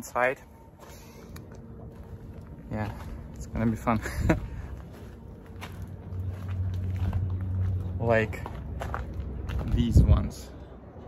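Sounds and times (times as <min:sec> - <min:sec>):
man talking: 0:00.0 - 0:00.5, 0:02.6 - 0:04.4, 0:07.9 - 0:08.6, 0:09.6 - 0:10.6
low outdoor background noise: 0:00.0 - 0:11.0.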